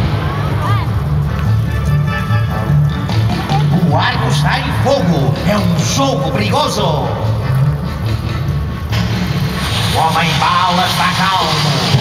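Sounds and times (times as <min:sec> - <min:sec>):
music with repeating bass: 0:01.1 - 0:09.6.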